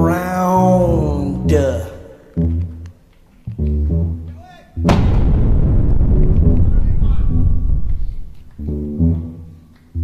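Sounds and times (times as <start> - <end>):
low keyboard notes: 3.5 - 10.0
loud blast: 4.8 - 8.7
heavy low rumbling: 4.8 - 9.4.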